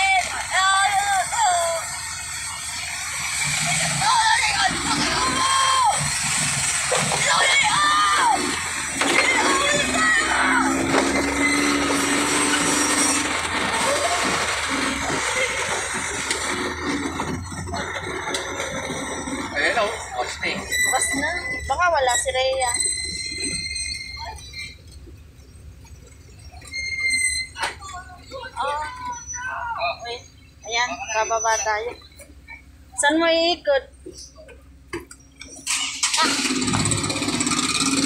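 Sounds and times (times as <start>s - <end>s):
vehicle engine: 0.0s - 38.0s
voices: 0.0s - 38.0s.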